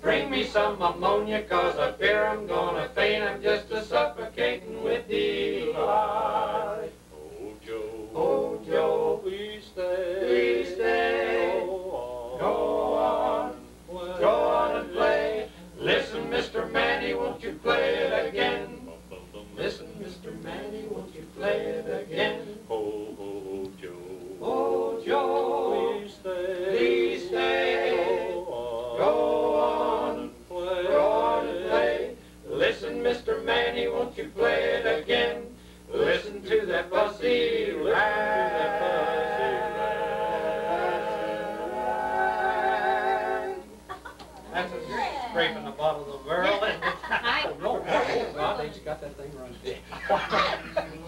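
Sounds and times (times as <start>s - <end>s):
male quartet singing a cappella: 0.0s - 46.9s.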